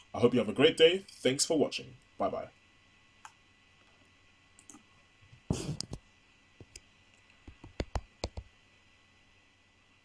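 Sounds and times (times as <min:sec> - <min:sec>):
computer mouse clicks: 0:04.6 - 0:04.8, 0:05.5 - 0:06.0, 0:06.6 - 0:08.5.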